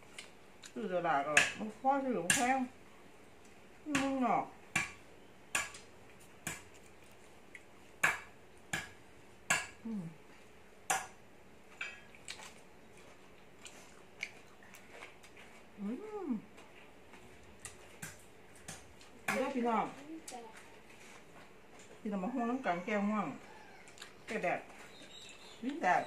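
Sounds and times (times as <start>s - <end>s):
person humming mm: 9.8s - 10.3s, 15.8s - 16.5s
mouth smacks while chewing: 12.1s - 15.4s, 23.9s - 24.2s.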